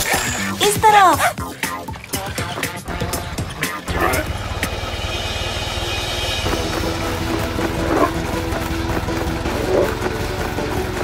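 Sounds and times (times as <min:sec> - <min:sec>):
background music: 0:00.0 - 0:11.0
cartoon engine rumble: 0:02.8 - 0:10.1.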